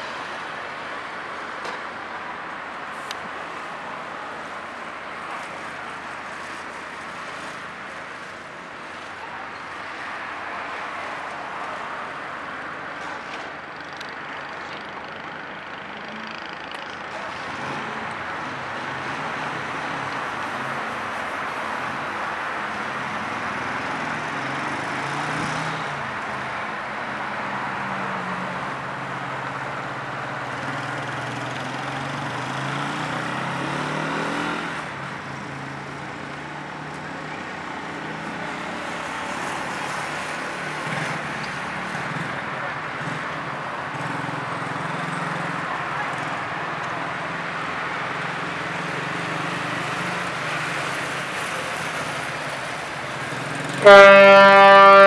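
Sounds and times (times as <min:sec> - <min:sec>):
outdoor noise rush: 0:00.0 - 0:55.0.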